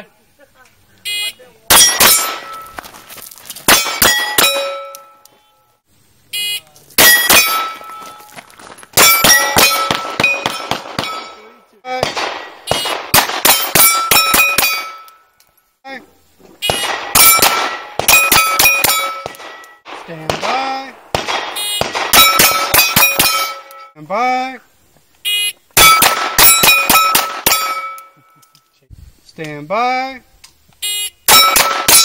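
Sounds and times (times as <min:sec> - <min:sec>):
pistol shots: 0:01.7 - 0:02.8, 0:03.7 - 0:05.0, 0:07.0 - 0:08.0, 0:09.0 - 0:15.1, 0:16.6 - 0:23.8, 0:25.8 - 0:28.1, 0:31.3 - 0:32.0.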